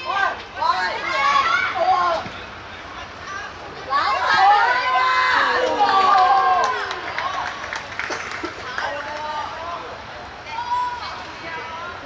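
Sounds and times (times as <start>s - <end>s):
young voices shouting: 0.0s - 2.3s, 3.3s - 7.2s
background chatter: 0.0s - 12.0s.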